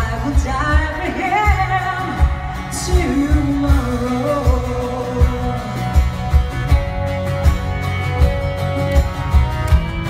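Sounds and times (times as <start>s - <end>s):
woman singing: 0.0s - 6.4s.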